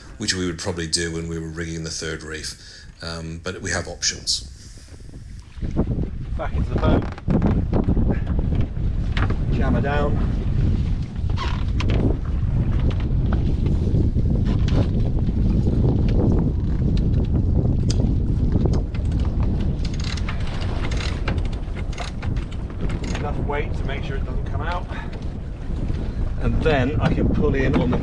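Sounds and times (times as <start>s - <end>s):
wind buffeting microphone: 0.0s - 28.0s
rigging clicks and knocks: 18.6s - 23.3s.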